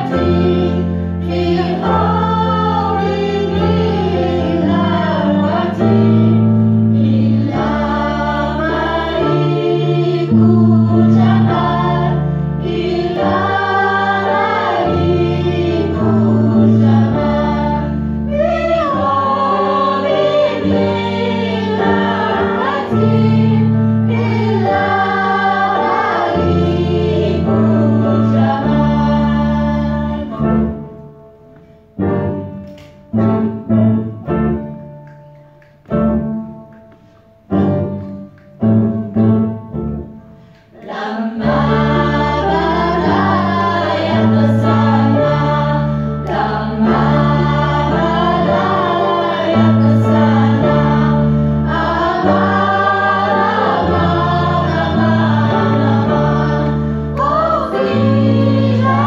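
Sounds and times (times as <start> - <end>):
women singing together: 0.0 - 30.8, 40.6 - 59.0.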